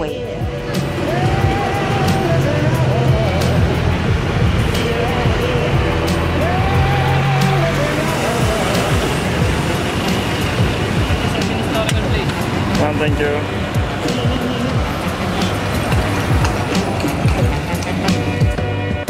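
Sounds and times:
city street traffic: 0:00.0 - 0:19.0
melodic background music: 0:00.0 - 0:19.0.

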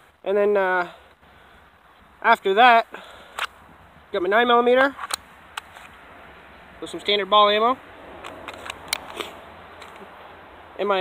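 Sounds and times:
handgun clicks and rustles: 0:03.2 - 0:03.6, 0:04.8 - 0:06.0, 0:08.2 - 0:10.1.

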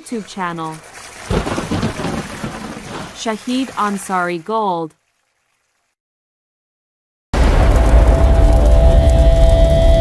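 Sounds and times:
low rumble of thunder: 0:01.3 - 0:03.1, 0:07.4 - 0:10.0.

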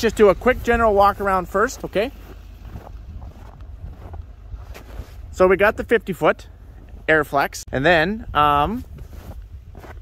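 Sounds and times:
footsteps crunching in snow: 0:00.0 - 0:07.4, 0:08.4 - 0:10.0
wind rumbling on microphone: 0:00.0 - 0:10.0.

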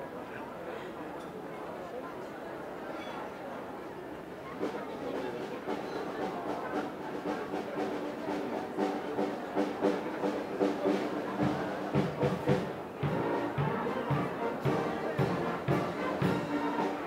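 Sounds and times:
drum beats: 0:05.5 - 0:17.0
brass band playing: 0:08.8 - 0:17.0.

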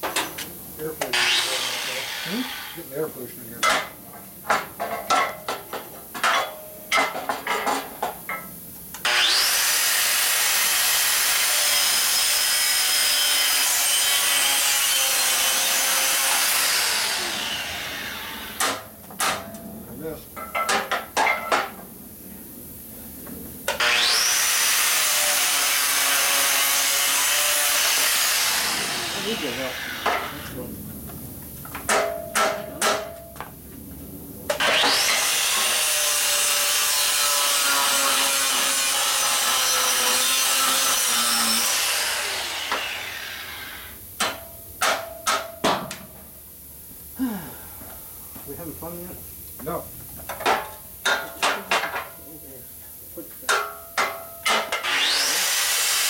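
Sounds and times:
angle grinder cutting steel: 0:00.2 - 0:03.1, 0:09.0 - 0:18.8, 0:23.7 - 0:30.6, 0:34.5 - 0:44.4, 0:54.0 - 0:56.0.

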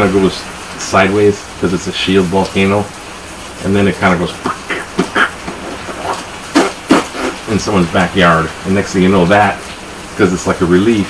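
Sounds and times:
loud hissing burst: 0:00.0 - 0:10.2
man making vocal sound effects: 0:03.6 - 0:08.5.

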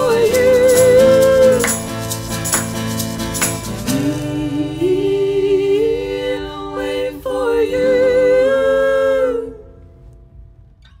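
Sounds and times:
singers holding note in harmony: 0:03.9 - 0:09.9
faint low room rumble: 0:04.0 - 0:11.0.

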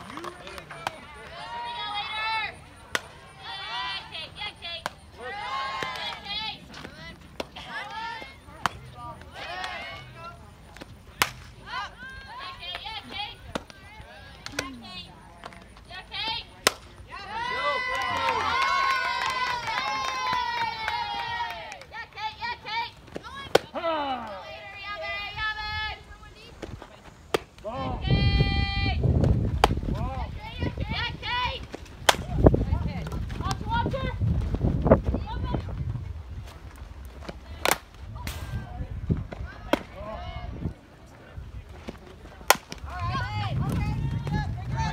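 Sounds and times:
crowd cheering and shouting: 0:00.7 - 0:02.6, 0:05.2 - 0:06.6, 0:17.1 - 0:21.7
bat hitting ball: 0:32.0 - 0:32.3, 0:42.4 - 0:42.8.

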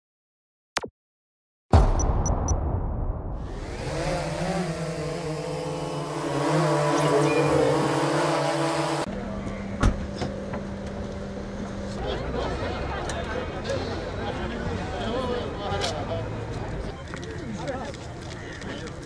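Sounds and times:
drone propellers whining: 0:03.4 - 0:09.1.

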